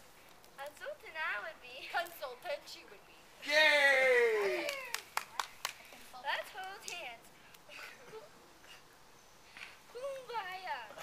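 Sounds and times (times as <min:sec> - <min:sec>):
hand claps: 0:04.6 - 0:05.8.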